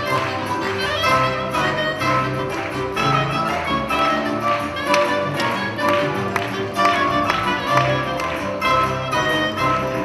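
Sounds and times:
small orchestra playing dance music: 0.0 - 10.0.

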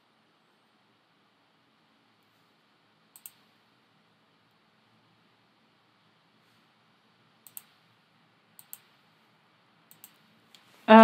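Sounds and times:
computer mouse clicks: 3.1 - 3.6, 7.4 - 7.8, 8.6 - 9.0, 9.9 - 10.7.

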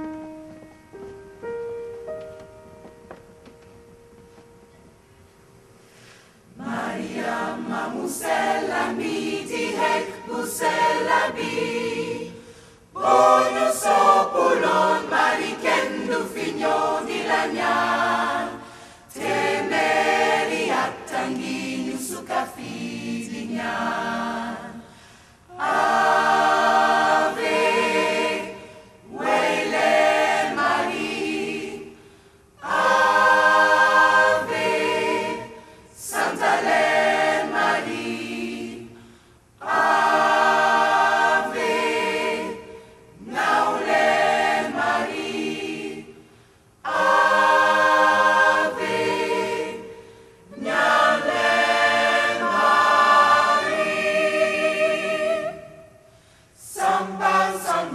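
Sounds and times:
gospel choir singing in harmony: 5.9 - 57.9.

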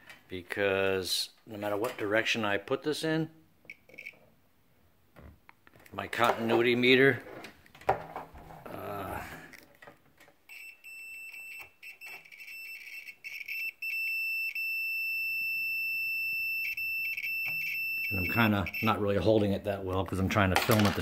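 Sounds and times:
multimeter high beep: 10.5 - 19.0.

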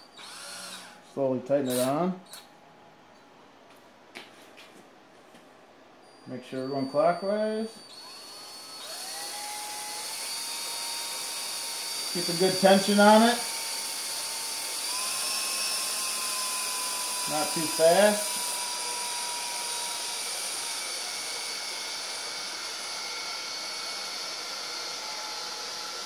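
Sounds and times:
cordless drill motor whine: 0.0 - 1.0, 6.1 - 26.0.

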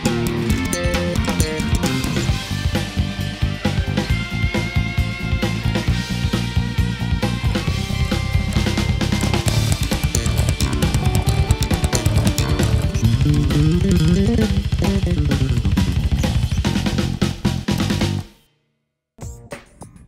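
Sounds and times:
slap electric bass: 7.5 - 18.3.

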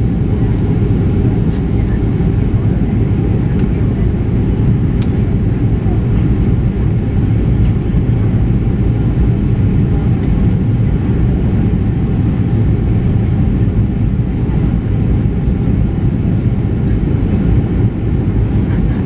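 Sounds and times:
jet engines roaring: 0.0 - 19.0.

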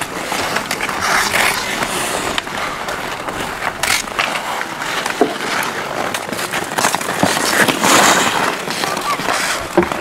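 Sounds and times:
hockey sticks and puck clicking: 0.0 - 10.0
skates scraping on ice: 0.0 - 10.0.

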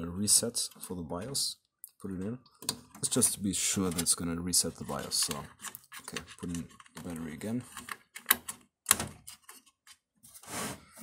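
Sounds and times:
rustling scrape of handled parts: 9.3 - 11.0.

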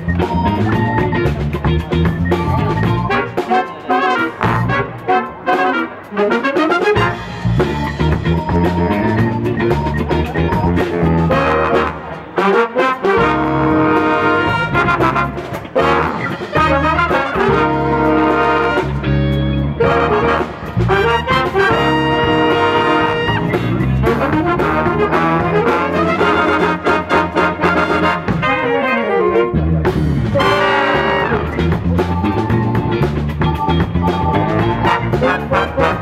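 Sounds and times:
big band playing jazz: 0.0 - 36.0.

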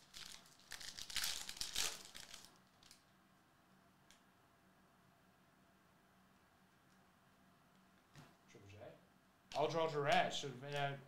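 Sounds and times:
foil wrapper tearing and crinkling: 0.0 - 3.0.

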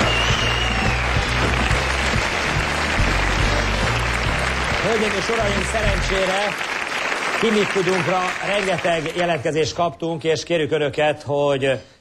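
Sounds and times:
upbeat band music: 0.0 - 6.7
audience applause: 0.0 - 9.5.

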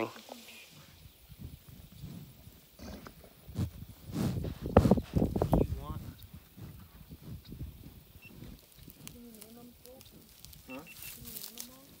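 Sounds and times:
bison snuffling: 0.5 - 12.0.

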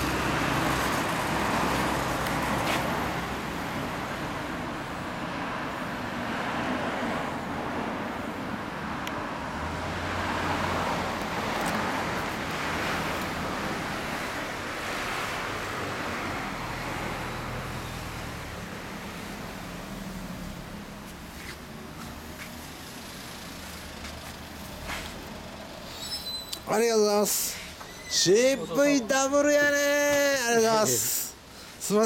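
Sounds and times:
cars passing on street: 0.0 - 32.0.

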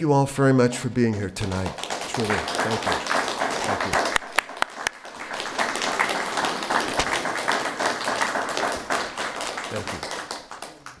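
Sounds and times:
audience applauding: 0.9 - 11.0.

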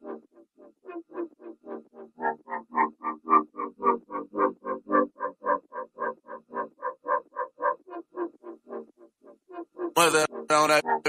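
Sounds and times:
pulsing pitched synth tone: 9.5 - 11.0.

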